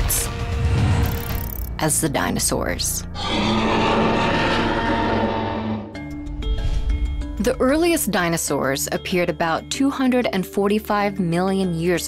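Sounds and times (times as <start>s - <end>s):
dinosaur roar: 3.2s - 6.0s.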